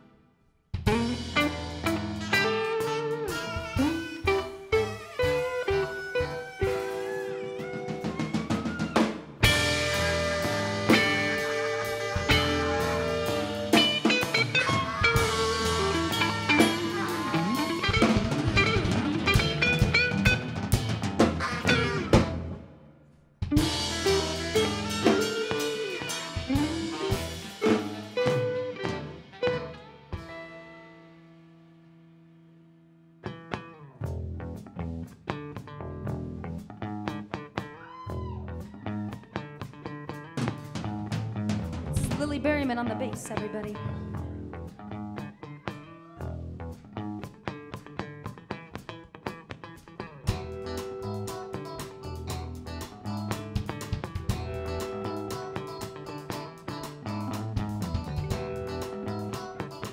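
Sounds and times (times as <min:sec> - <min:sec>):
electric guitar lead: 0:00.8 - 0:22.8, 0:23.4 - 0:59.9
live band playing: 0:00.8 - 0:22.8, 0:23.4 - 0:31.6, 0:33.2 - 0:59.9
saxophone: 0:00.9 - 0:20.4, 0:21.4 - 0:22.4, 0:23.5 - 0:31.2.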